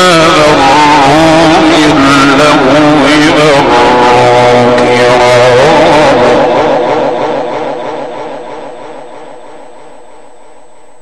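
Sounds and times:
man reciting a long melodic note: 0:00.0 - 0:07.9.

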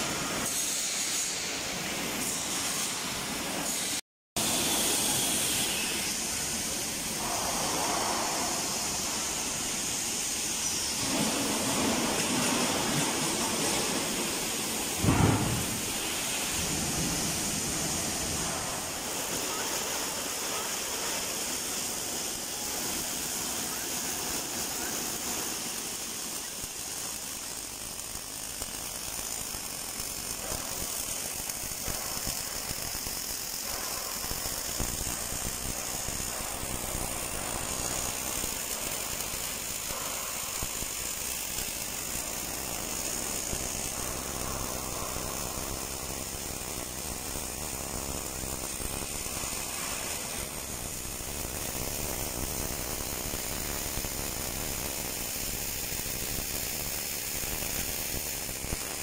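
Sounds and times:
welding arc crackling hiss: 0:00.0 - 0:59.0.

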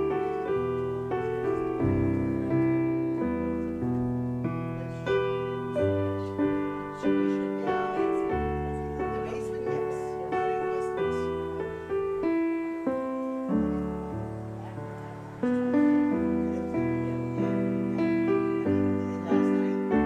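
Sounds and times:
piano playing slow chords: 0:00.0 - 0:20.0.

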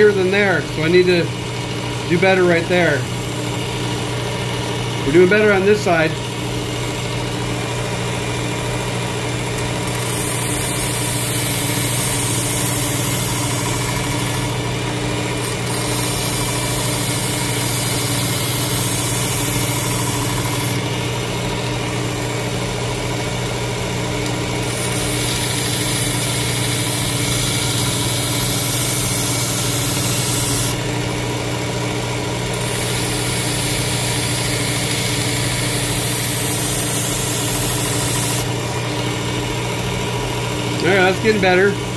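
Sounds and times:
sharpener motor hum: 0:00.0 - 0:41.9
razor grinding on belt: 0:00.8 - 0:41.7.

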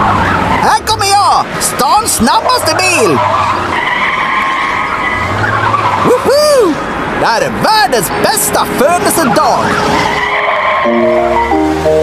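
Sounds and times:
cartoon tyres squealing: 0:00.0 - 0:07.0, 0:07.7 - 0:11.7.

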